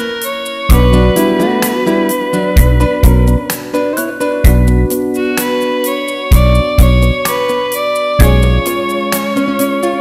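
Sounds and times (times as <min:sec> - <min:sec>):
instrumental backing track music: 0:00.0 - 0:10.0
heavy bass drum hit: 0:00.7 - 0:01.2, 0:04.5 - 0:04.9, 0:08.2 - 0:08.6.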